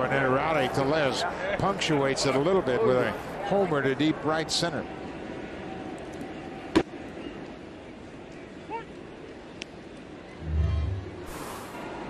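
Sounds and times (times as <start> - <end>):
crowd murmur: 10.3 - 12.0
low rumbling whoosh: 10.4 - 11.8.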